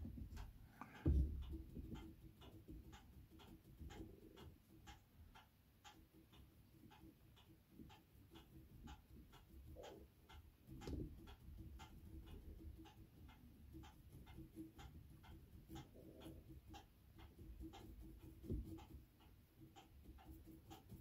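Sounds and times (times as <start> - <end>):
soft low knocks: 0.0 - 1.9
faint clock ticking: 0.0 - 21.0.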